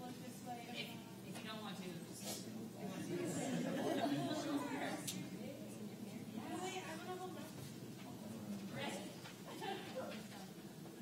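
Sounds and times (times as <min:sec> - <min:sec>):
murmur of many voices: 0:00.0 - 0:11.0.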